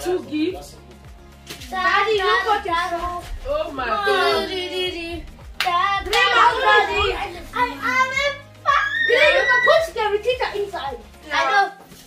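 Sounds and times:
excited voices talking: 0:01.8 - 0:11.8.

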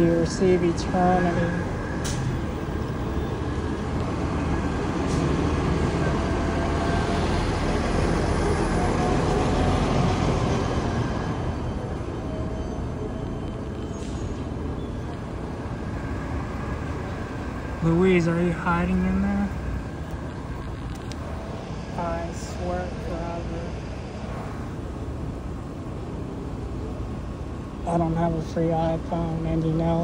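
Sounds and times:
road traffic rushing by: 0:00.0 - 0:30.0.

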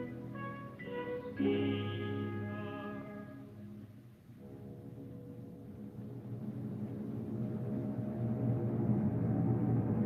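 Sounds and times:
orchestra sustained low chords: 0:00.0 - 0:10.0.

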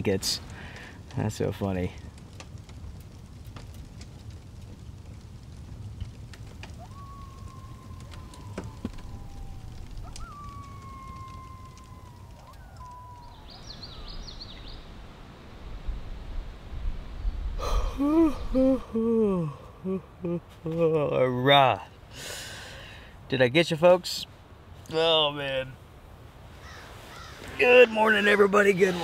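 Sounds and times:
rain falling on a tent: 0:00.0 - 0:29.0
man yawning: 0:17.6 - 0:21.0.

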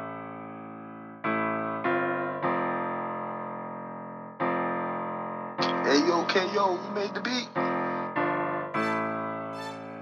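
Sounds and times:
ringing piano chords: 0:00.0 - 0:10.0
man's voice tag: 0:05.6 - 0:07.6.

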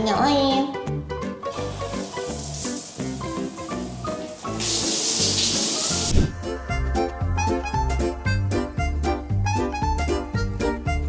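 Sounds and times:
background music: 0:00.0 - 0:11.0
water spray running: 0:01.4 - 0:06.2.

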